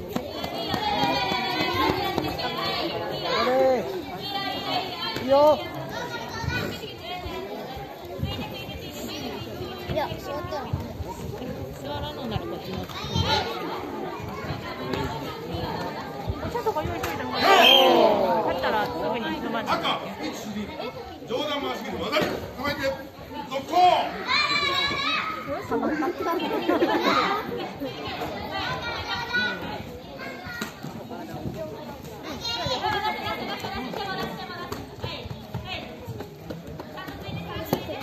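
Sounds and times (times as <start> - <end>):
children calling and shouting: 0.0 - 38.0.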